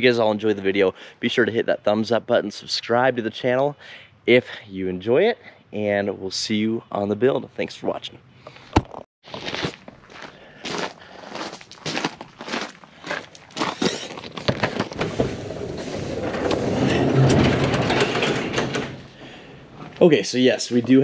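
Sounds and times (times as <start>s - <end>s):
footsteps crunching on gravel: 9.2s - 14.6s
garage door rumbling up: 14.2s - 20.1s.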